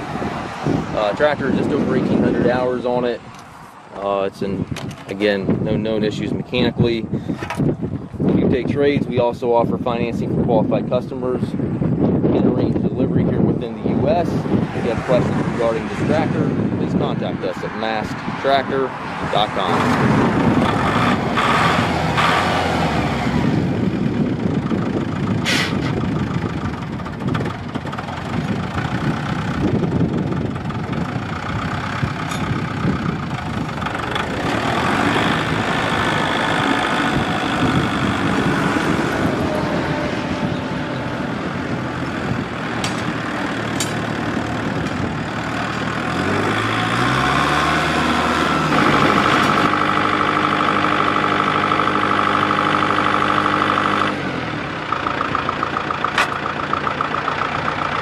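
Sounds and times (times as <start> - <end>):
tractor diesel engine running: 0.0 - 58.0.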